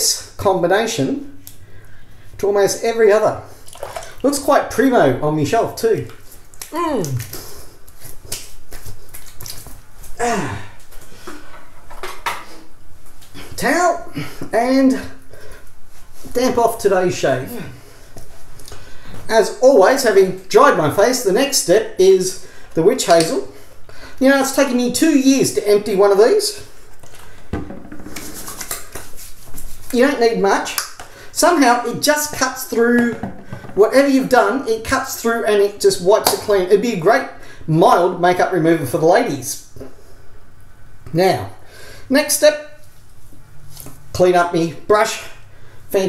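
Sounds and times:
hands rubbing skin: 6.1s - 10.2s, 28.1s - 30.0s
hand rubbing damp skin: 28.1s - 30.0s.

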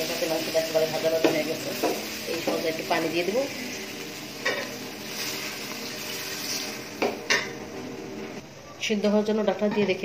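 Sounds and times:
frying sizzle: 0.0s - 8.4s.

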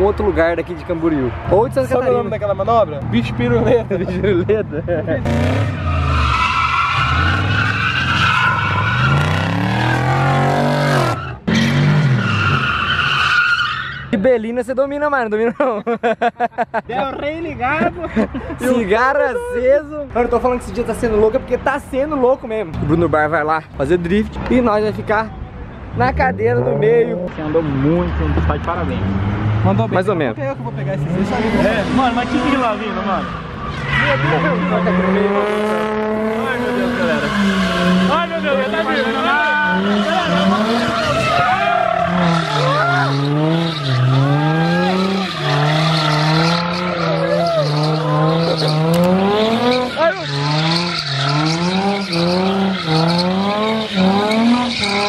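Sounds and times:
car engine revving: 5.2s - 13.5s, 25.9s - 55.0s
tyres squealing: 5.3s - 14.2s, 31.3s - 55.0s.

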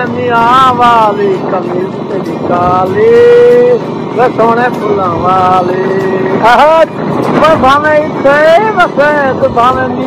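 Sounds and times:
moving vehicle running noise: 0.0s - 10.0s.

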